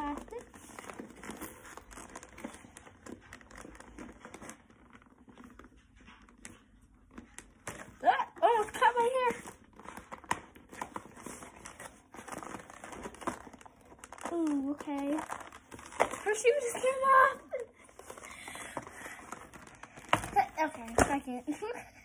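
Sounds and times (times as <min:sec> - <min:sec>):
plastic packaging crinkling and tearing: 0:00.0 - 0:06.3, 0:07.1 - 0:21.1
cardboard rustling: 0:00.0 - 0:21.8.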